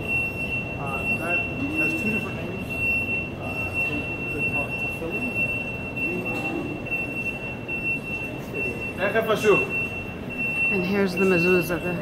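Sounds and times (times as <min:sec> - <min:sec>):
faint murmuring voices: 0:00.1 - 0:12.0.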